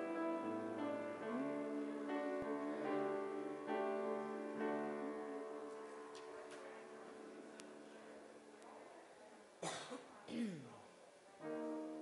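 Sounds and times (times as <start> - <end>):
person coughing: 9.6 - 10.7.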